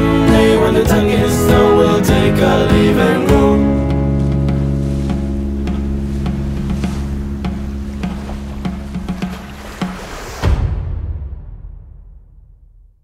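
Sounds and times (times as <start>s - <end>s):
folk band holding a chord: 0.0s - 5.0s.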